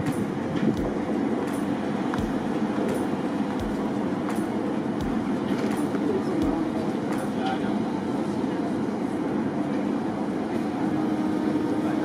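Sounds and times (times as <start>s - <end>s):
ship machinery rumble: 0.0s - 12.0s.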